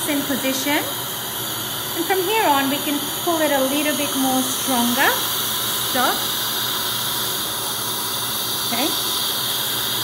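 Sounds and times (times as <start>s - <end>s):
dental suction hissing: 0.0s - 10.0s.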